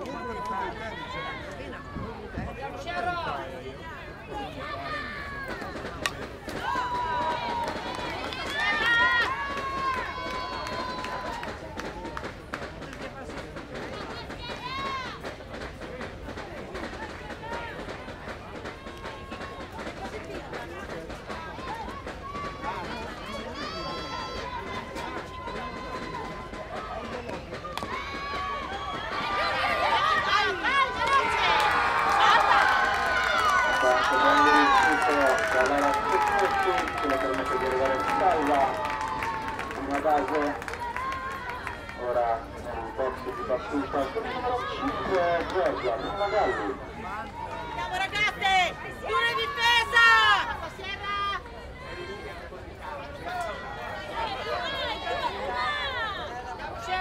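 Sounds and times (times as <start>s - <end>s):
players cheering: 4.3s - 13.2s, 16.8s - 57.0s.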